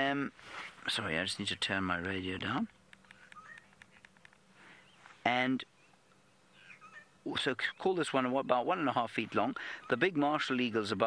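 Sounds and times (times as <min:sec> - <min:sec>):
faint clicks: 0:02.7 - 0:04.5
faint bird chirps: 0:03.0 - 0:04.0, 0:04.6 - 0:08.0, 0:09.5 - 0:10.6.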